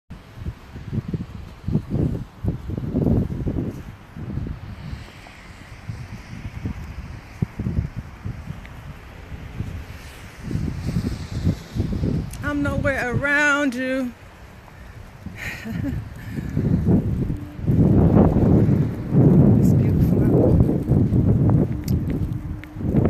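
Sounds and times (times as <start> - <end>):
wind buffeting microphone: 0.1 - 23.0.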